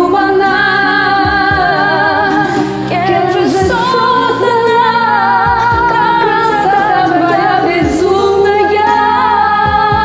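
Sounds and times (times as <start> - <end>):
pop ballad backing track: 0.0 - 10.0.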